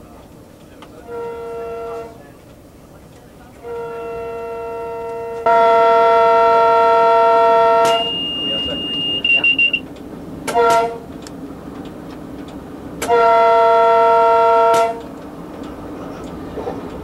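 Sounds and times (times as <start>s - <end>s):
train horn blasts: 1.0s - 2.2s, 3.6s - 9.8s, 10.5s - 11.1s, 13.0s - 15.1s
steady high-pitched beep: 8.0s - 9.8s.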